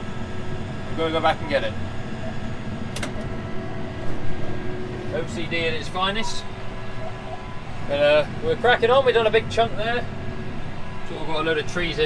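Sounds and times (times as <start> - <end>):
faint steady whine: 0.0 - 12.0
tractor diesel engine drone: 0.0 - 12.0.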